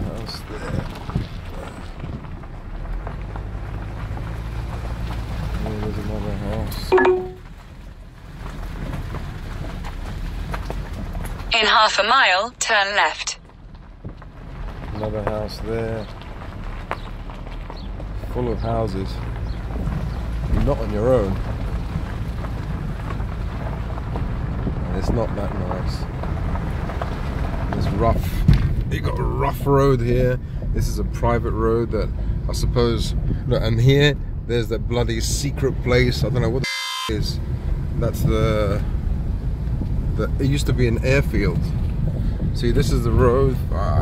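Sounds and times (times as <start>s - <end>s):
car engine and tyre rumble: 0.0s - 44.0s
wind: 0.0s - 44.0s
tyres rumbling on rough concrete: 13.6s - 31.9s.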